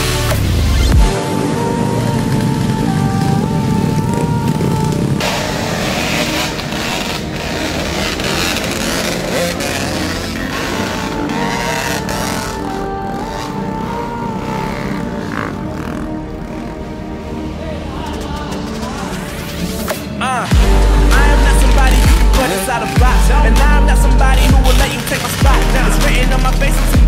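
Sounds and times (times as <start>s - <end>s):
background music: 0.0s - 27.0s
dirt bike engines running: 0.0s - 27.0s.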